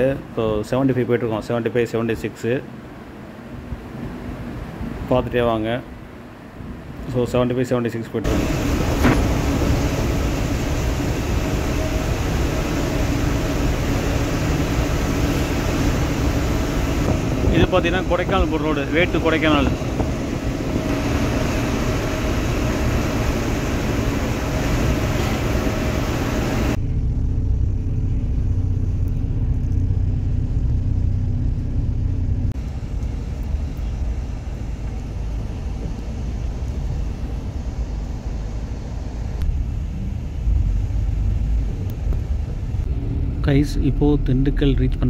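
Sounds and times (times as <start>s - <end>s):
bus engine and tyres rumbling: 0.0s - 45.0s
hiss and wind noise: 2.6s - 26.8s, 32.5s - 44.6s.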